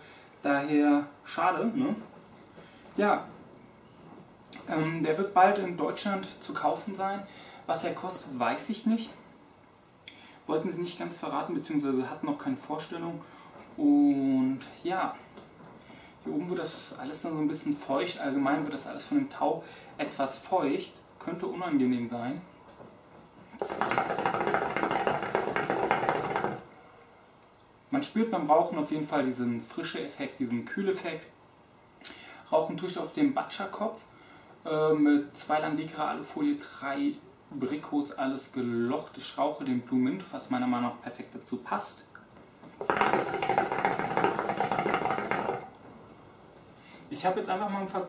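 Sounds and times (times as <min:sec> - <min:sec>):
hookah water bubbling: 0:23.6 - 0:26.7, 0:42.8 - 0:45.8.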